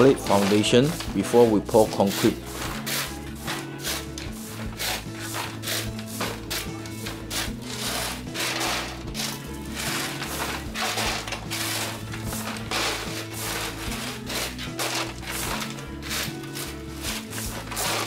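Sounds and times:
background music with chords: 0.0s - 18.0s
shovels scraping gravel: 0.0s - 18.0s.

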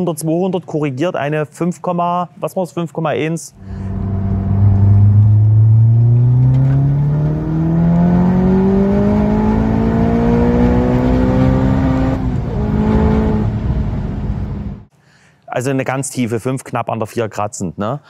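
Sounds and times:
gear change: 3.6s - 14.8s
turbo car engine accelerating: 3.6s - 14.9s.

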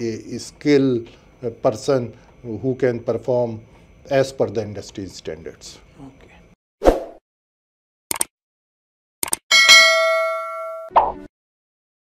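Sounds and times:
mouse-style clicks: 8.1s - 8.3s, 9.2s - 9.4s
notification bell ding: 9.5s - 10.9s.

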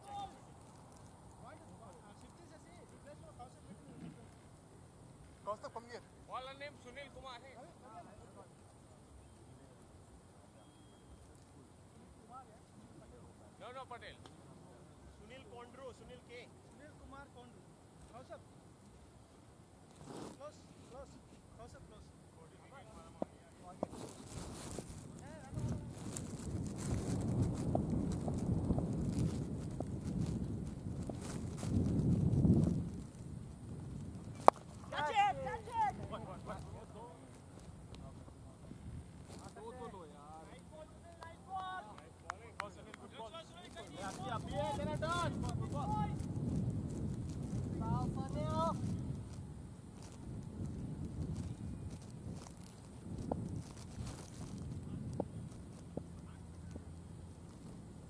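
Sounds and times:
wind rumbling on microphone: 23.8s - 39.4s, 43.5s - 58.0s.

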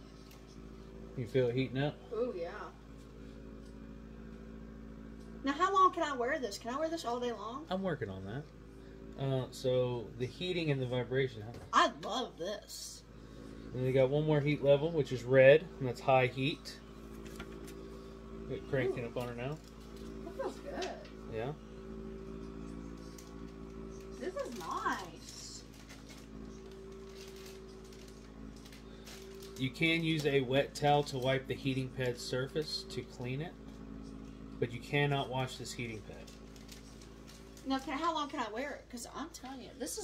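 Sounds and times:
massager vibration motor humming: 0.0s - 40.0s.

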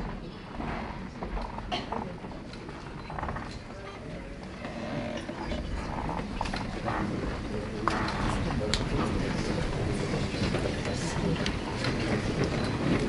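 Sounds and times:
murmured talk: 0.0s - 13.0s.

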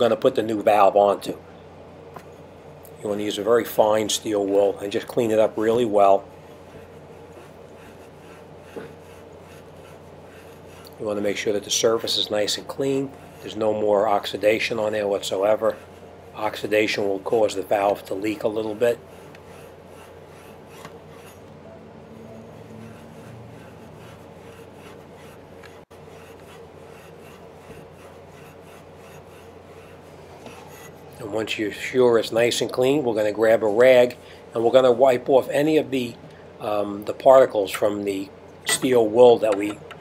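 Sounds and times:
steel wool scrubbing copper pipe: 3.4s - 34.8s.

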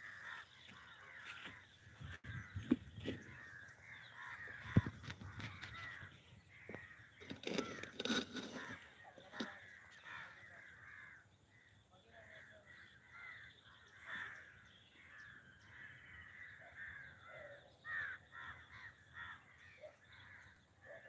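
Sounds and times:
crows cawing: 0.0s - 21.0s.

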